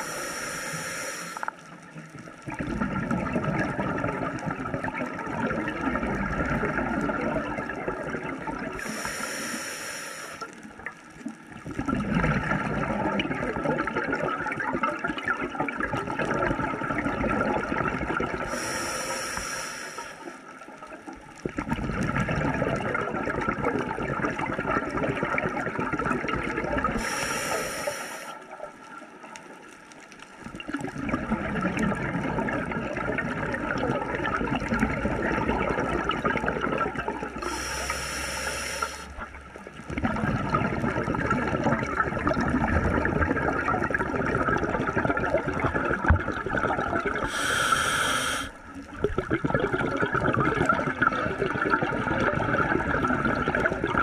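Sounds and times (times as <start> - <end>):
regulator hiss on inhalation: 0.0 - 1.6, 8.8 - 10.6, 18.5 - 20.4, 27.0 - 28.4, 37.4 - 39.2, 47.2 - 48.6
underwater bubbles of exhalation: 0.0 - 9.3, 10.4 - 19.6, 20.3 - 29.4, 30.3 - 54.0.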